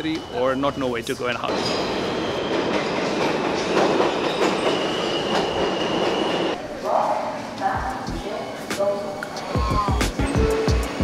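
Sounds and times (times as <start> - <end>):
high wheel squeal: 0.0 - 3.0
train wheels rumbling on rails: 1.4 - 11.0.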